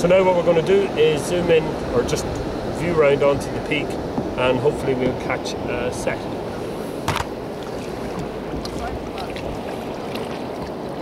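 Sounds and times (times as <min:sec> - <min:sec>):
wind and sea water rushing: 0:00.0 - 0:11.0.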